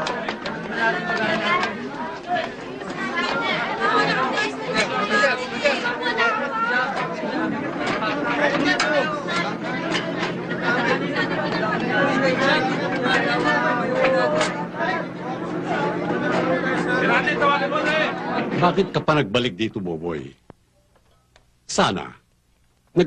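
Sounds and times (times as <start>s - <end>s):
voices chattering: 0.0s - 20.2s
steady low hum: 7.1s - 23.0s.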